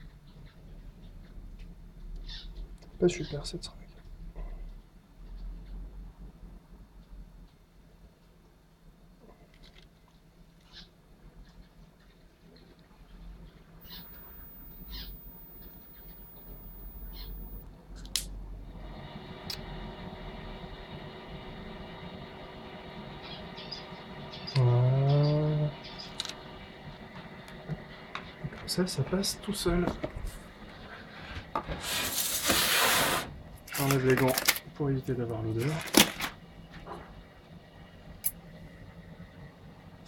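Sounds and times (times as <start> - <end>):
steady hum: 13.6 - 32.5.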